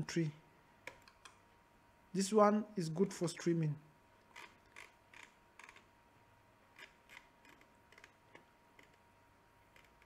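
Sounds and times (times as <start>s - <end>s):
faint steady high hum: 0.0s - 10.0s.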